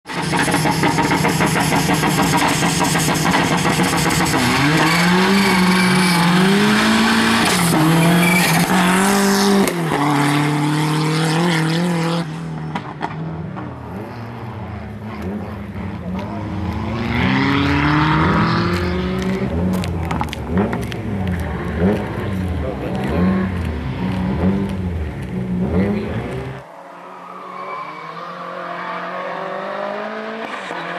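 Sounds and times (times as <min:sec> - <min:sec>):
car engine revving through gears: 0:00.1 - 0:30.9.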